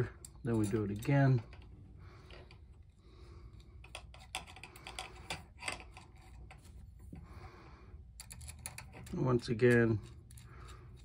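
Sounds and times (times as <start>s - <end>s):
metal bolt clicking and scraping: 0.0s - 2.7s, 3.8s - 7.2s, 8.1s - 11.0s.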